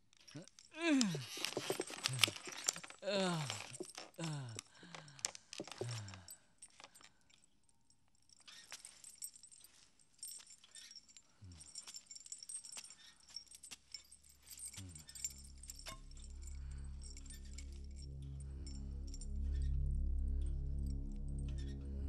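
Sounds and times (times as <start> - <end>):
metallic jingling and clinking: 0.0 - 22.0
low musical drone: 15.2 - 22.0.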